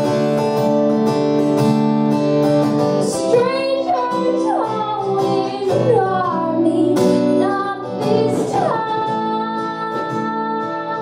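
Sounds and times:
acoustic guitar: 0.0s - 11.0s
woman singing: 3.0s - 11.0s.

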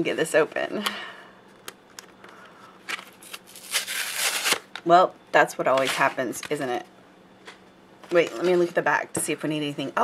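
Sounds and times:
plastic and card crackling: 2.9s - 4.8s.

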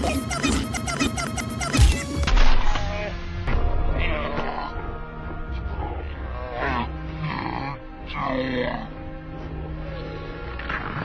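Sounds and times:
dramatic film score music: 0.0s - 11.0s.

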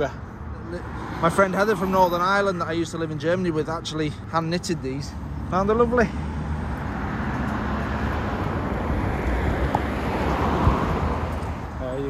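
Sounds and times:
road traffic tyre noise: 0.0s - 12.0s.

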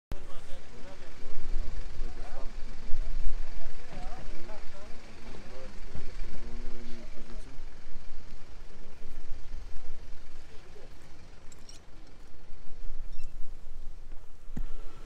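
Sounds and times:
people talking: 0.1s - 7.6s, 10.3s - 11.1s.

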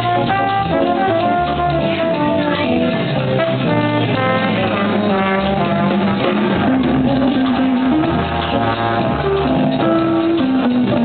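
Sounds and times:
trumpet soloing: 0.0s - 10.4s
jazz combo playing: 0.0s - 11.0s.

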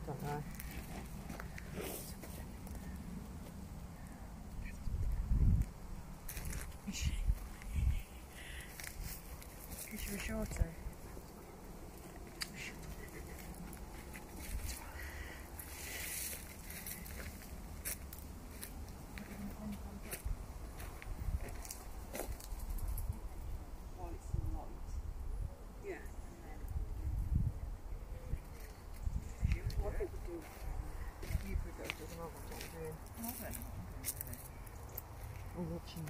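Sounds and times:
twigs crackling: 0.0s - 3.6s, 5.6s - 6.9s, 8.4s - 23.1s, 28.4s - 36.0s
footsteps on leaf litter and twigs: 6.3s - 6.8s, 15.5s - 22.7s, 30.2s - 35.6s.

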